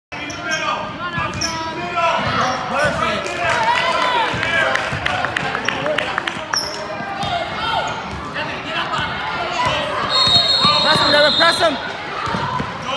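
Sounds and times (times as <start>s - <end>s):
voices in a hall: 0.1s - 12.9s.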